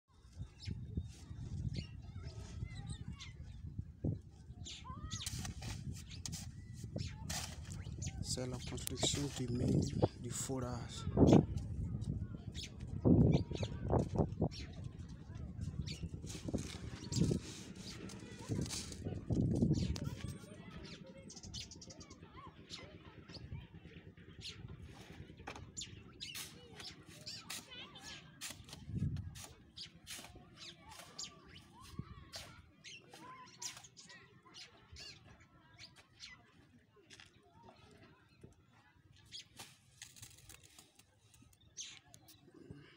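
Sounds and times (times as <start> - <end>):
trowel scraping wet mortar: 5.2 - 7.8, 26.3 - 27.7, 28.4 - 31.7
light clicks and scrapes: 14.0 - 20.5, 39.2 - 42.4.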